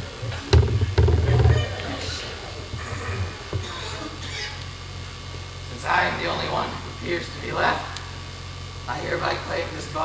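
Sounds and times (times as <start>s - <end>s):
indistinct voices: 0.0s - 4.7s.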